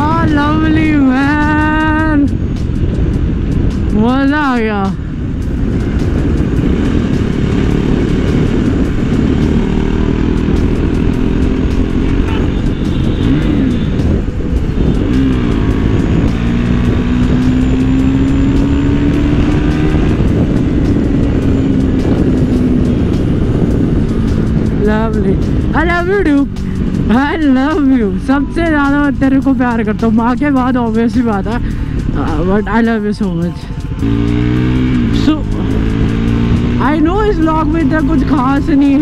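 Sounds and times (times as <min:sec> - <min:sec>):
motorcycle engine running: 0:00.0 - 0:39.0
wind on microphone: 0:00.0 - 0:39.0.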